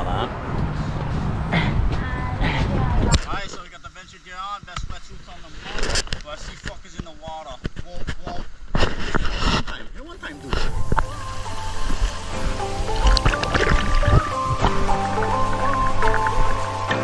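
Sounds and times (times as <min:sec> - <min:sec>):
man talking: 0:09.8 - 0:10.7
background music: 0:10.2 - 0:17.0.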